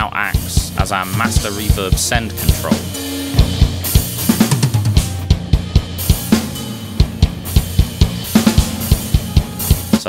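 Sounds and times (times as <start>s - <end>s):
drum kit groove: 0.0s - 10.0s
hard drum hit: 0.4s - 10.0s
cymbal crashes: 1.5s - 10.0s.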